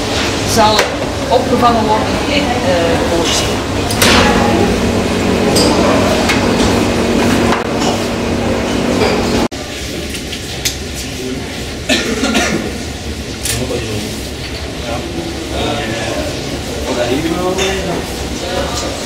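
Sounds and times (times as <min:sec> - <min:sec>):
steady hum: 0:00.0 - 0:10.1
indistinct voices: 0:00.5 - 0:09.5.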